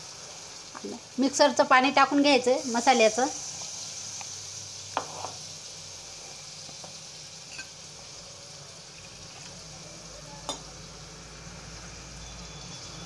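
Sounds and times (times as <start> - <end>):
paste sizzling in oil: 0.0 - 13.0.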